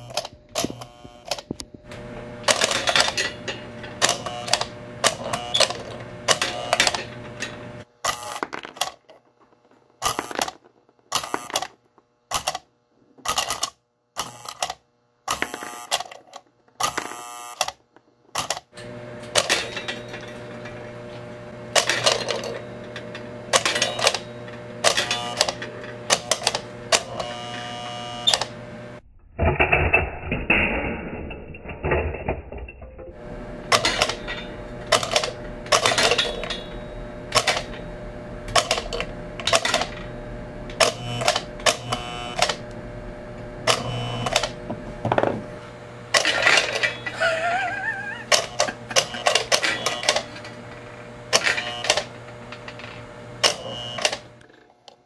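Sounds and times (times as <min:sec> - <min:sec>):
toy train mechanism clacking: 0:00.0 - 0:01.6, 0:02.4 - 0:12.6, 0:13.2 - 0:21.0, 0:21.7 - 0:28.5, 0:32.2 - 0:42.6, 0:43.7 - 0:44.6, 0:46.1 - 0:55.0
steady electrical hum: 0:00.0 - 0:29.0, 0:33.1 - 0:55.0.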